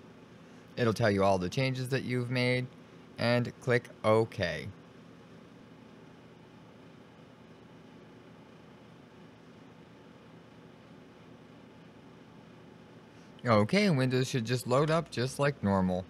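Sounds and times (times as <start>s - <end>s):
low background hum: 0.0s - 16.0s.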